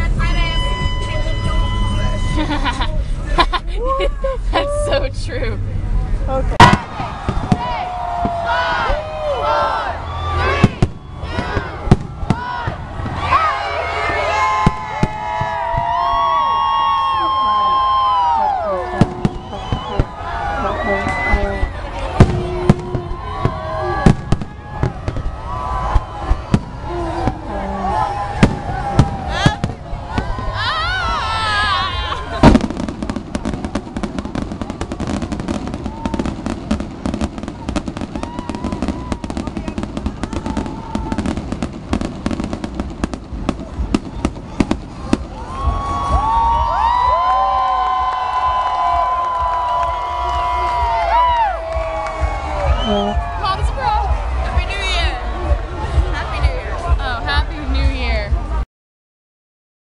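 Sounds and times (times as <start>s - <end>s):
crowd cheering: 0.0s - 5.1s, 6.5s - 58.6s
crowd talking and whooping: 0.0s - 58.6s
rapid firework crackling: 6.6s - 9.3s, 10.0s - 18.3s, 19.0s - 46.9s
firework bangs: 6.6s - 53.6s.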